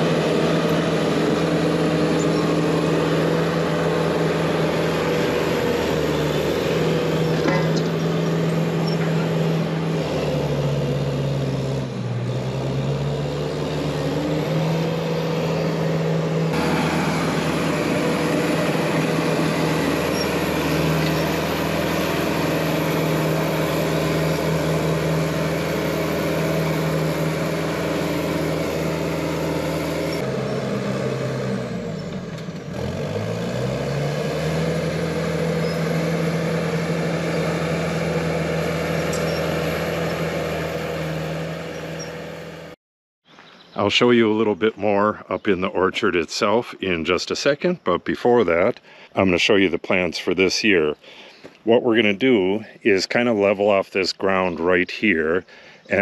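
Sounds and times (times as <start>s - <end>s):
bulldozer engine under load: 0.0s - 56.0s.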